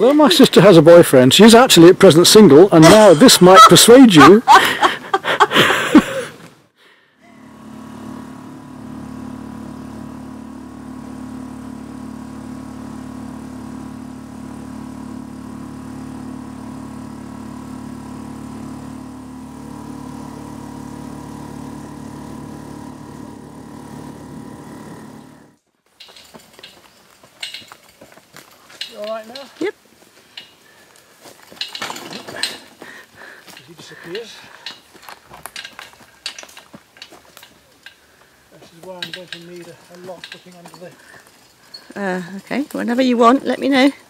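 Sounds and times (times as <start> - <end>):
outboard motor drone: 7.3 - 25.6.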